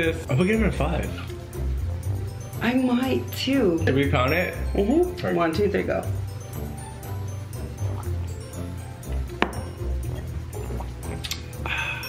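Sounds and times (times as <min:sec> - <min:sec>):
music with steady bass: 0:00.0 - 0:12.0
glass set down on wooden table: 0:09.4 - 0:09.7.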